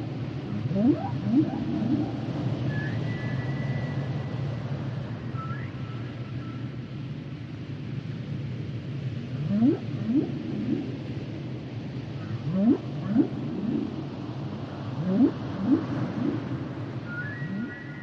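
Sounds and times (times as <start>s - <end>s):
steady low rumble: 0.0s - 5.3s, 6.6s - 18.0s
whale song underwater: 0.5s - 4.2s, 9.4s - 11.0s, 12.2s - 14.1s, 14.9s - 18.0s.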